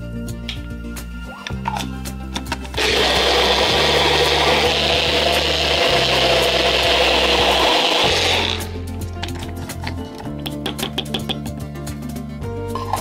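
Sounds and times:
blender motor running: 2.8 - 8.7.

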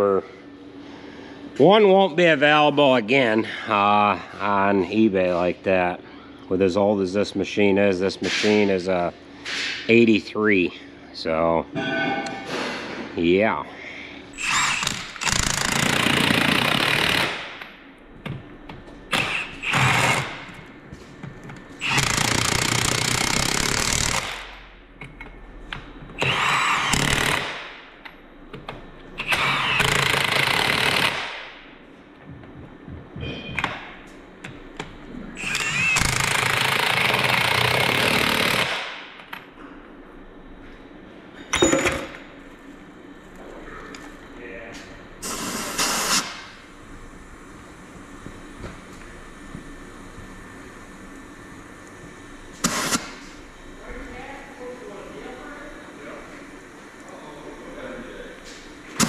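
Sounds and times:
impact wrench hammering: 21.8 - 27.8, 29.3 - 31.5, 35.5 - 39.3, 41.5 - 42.2.

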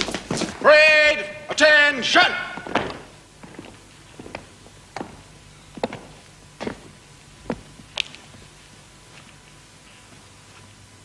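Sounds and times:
boot steps on cobbles: 0.0 - 1.0, 2.3 - 9.5
man calling out: 0.6 - 2.7.

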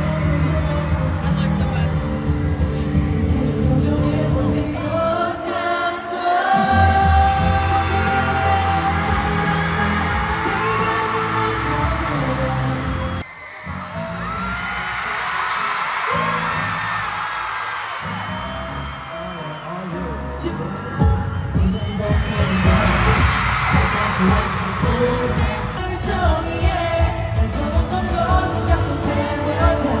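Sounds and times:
bass line: 0.0 - 5.1
boy group singing: 0.0 - 13.2, 21.6 - 30.0
amplified pop backing track: 0.0 - 13.3, 14.0 - 30.0.

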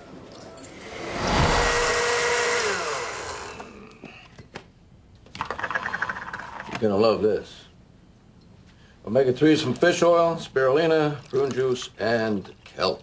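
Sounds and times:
blender motor running: 0.8 - 4.0.

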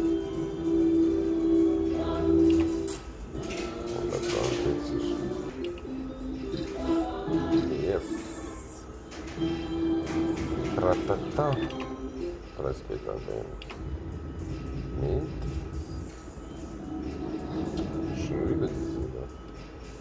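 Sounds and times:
slot machine held tone: 0.0 - 6.7, 9.0 - 20.0
slot machine jingle tones: 9.1 - 19.8.

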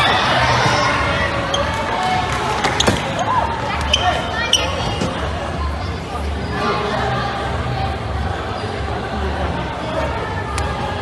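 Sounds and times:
people shouting and chattering: 0.0 - 11.0
balls slapping floor and players: 1.5 - 5.2.

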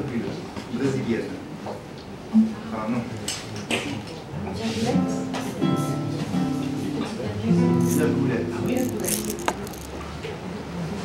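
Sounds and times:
classical guitar chords: 5.0 - 8.7.

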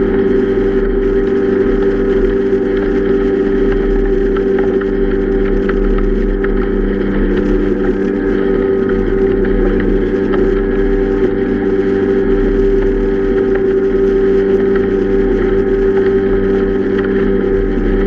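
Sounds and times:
outboard motor running: 0.0 - 18.0.

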